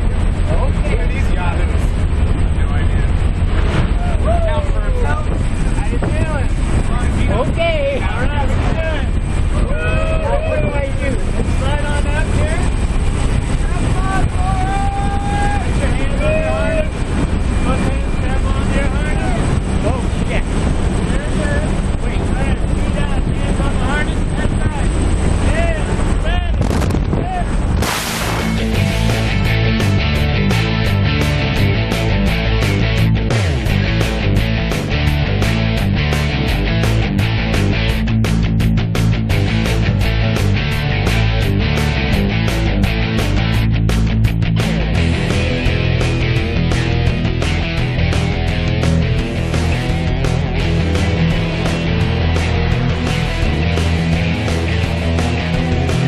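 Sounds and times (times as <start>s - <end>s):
plane engine noise: 0.0s - 56.0s
slipstream wind rushing: 0.0s - 56.0s.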